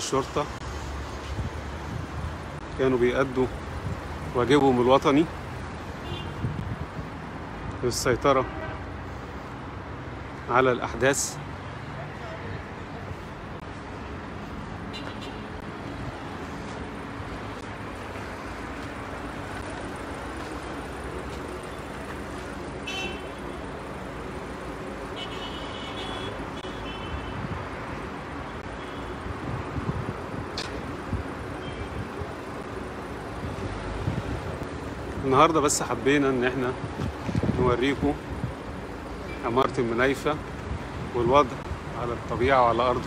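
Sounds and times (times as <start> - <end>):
city street traffic: 0.0 - 43.0.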